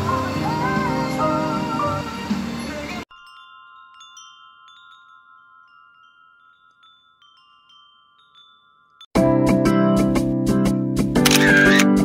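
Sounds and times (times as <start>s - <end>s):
background music: 0.0s - 3.0s, 9.2s - 12.0s
wind chime ringing: 3.0s - 9.1s.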